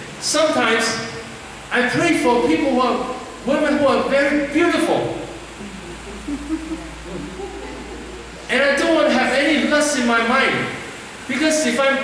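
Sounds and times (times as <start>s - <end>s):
soft low chuckling: 5.5s - 8.7s.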